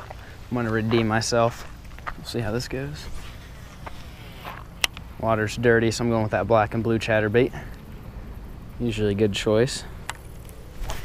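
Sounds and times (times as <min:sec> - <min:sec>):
faint rustling and handling noise: 0:00.0 - 0:05.2, 0:09.8 - 0:11.0.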